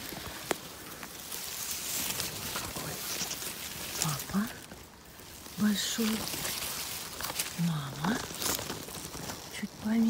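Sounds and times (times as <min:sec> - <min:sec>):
grass and leaves rustling: 0:00.0 - 0:10.0.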